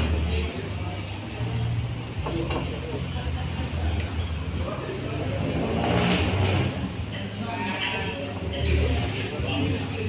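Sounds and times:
diners chattering: 0.0s - 10.0s.

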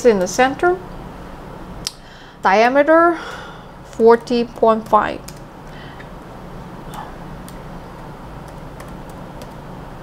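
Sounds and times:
low background hum: 0.0s - 10.0s
laptop keyboard keystrokes: 4.1s - 5.5s, 8.4s - 9.7s.

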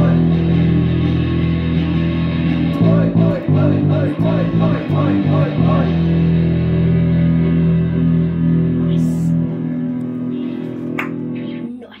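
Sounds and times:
distorted guitar and bass chord: 0.0s - 12.0s.

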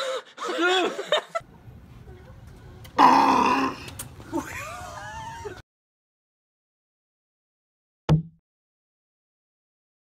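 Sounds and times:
woman squealing: 4.3s - 5.6s.

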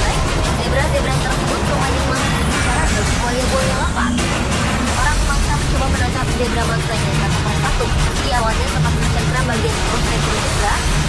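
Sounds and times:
background music: 0.0s - 11.0s
indistinct voices: 0.0s - 11.0s.

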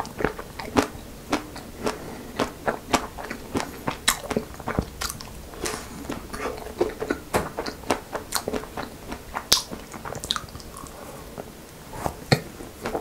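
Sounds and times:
biting and chewing crunchy food: 0.0s - 11.6s.

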